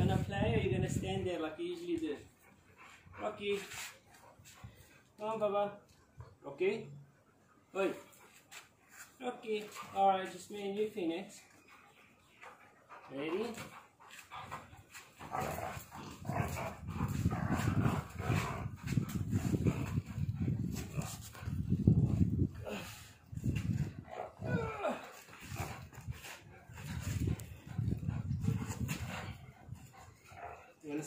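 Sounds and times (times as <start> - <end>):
dog play growling: 14.3 - 21.6.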